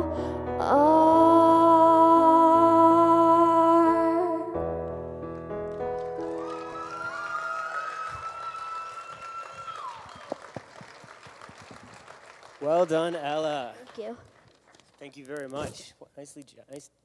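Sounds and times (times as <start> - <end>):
girl singing a long note: 0.0 - 4.6
man's voice: 15.0 - 16.9.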